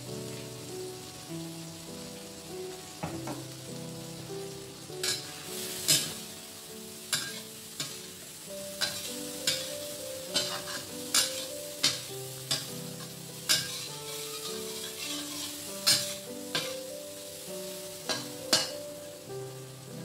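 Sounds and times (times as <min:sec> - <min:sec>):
sauce sizzling: 0:00.0 - 0:20.0
metal spatula scraping a wok: 0:05.0 - 0:06.2, 0:07.1 - 0:08.1, 0:08.8 - 0:16.8.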